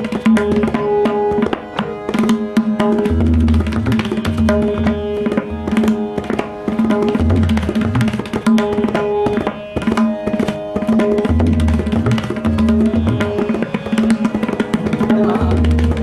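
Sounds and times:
harmonium: 0:00.0 - 0:16.0
tabla strokes: 0:00.0 - 0:16.0.

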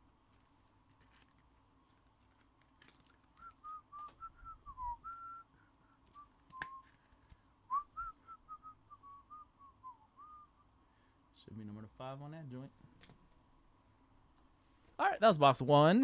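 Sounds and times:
person whistling a tune: 0:03.4 - 0:07.0, 0:07.7 - 0:10.6.

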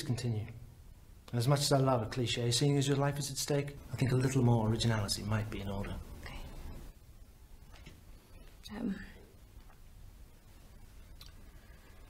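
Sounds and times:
faint low room hum: 0:00.0 - 0:12.0.

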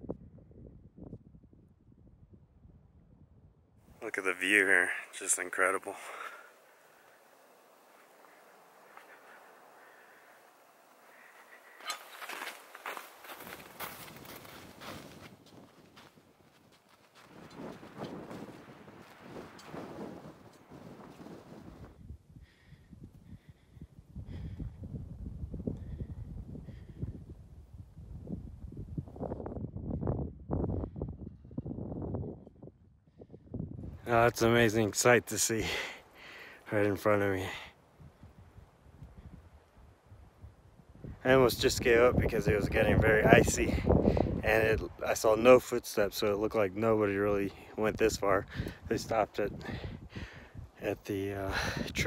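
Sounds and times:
wind rumbling on microphone: 0:00.0 - 0:04.7, 0:06.8 - 0:36.5, 0:37.8 - 0:45.6, 0:46.3 - 0:52.0
footsteps crunching in snow: 0:10.4 - 0:21.8.

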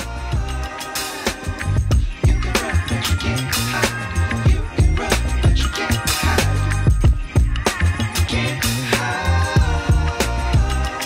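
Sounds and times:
music with drum beat and bass: 0:00.0 - 0:11.0.

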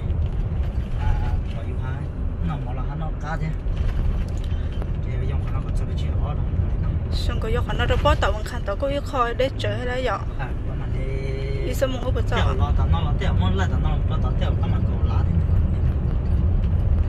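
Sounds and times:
car driving on dirt road: 0:00.0 - 0:17.0
people talking: 0:00.9 - 0:03.6, 0:05.0 - 0:06.5, 0:07.1 - 0:15.4.

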